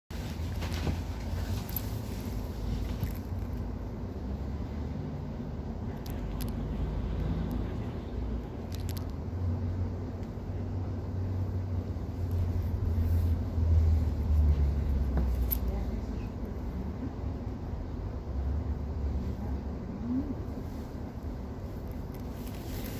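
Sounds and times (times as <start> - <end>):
tram hum: 0.1 - 22.9.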